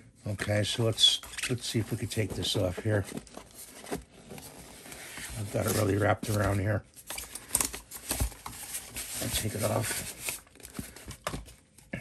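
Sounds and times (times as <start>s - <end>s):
straps rustling and scraping: 0.4s - 11.0s
plastic mask rubbing on foam: 8.9s - 10.5s.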